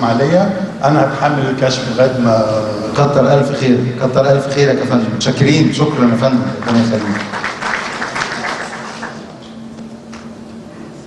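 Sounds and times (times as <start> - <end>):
audience applause: 6.0 - 9.4.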